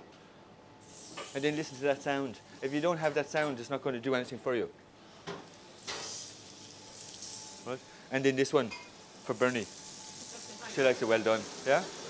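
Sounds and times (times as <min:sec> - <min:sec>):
meat sizzling in a frying pan: 0:00.8 - 0:03.2, 0:05.1 - 0:12.0.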